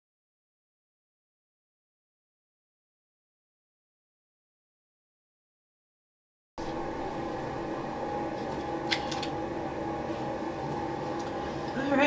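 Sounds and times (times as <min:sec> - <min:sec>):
mechanical room hum: 0:06.6 - 0:12.0.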